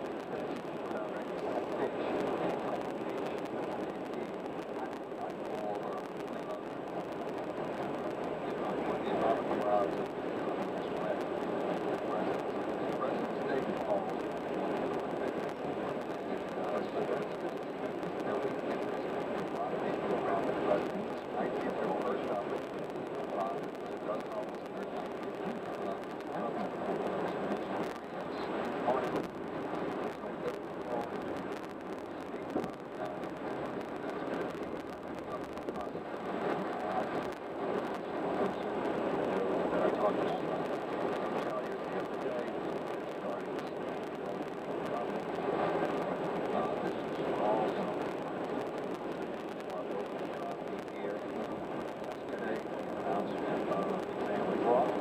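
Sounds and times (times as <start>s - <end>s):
muffled speech: 0.0s - 55.0s.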